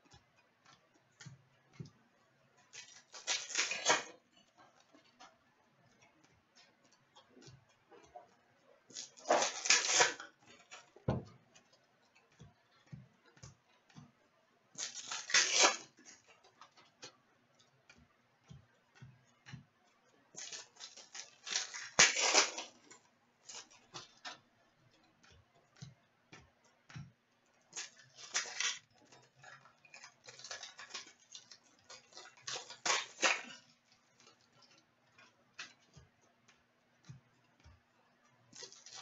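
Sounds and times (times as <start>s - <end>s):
cards clicking against each other: 14.8s - 16.2s.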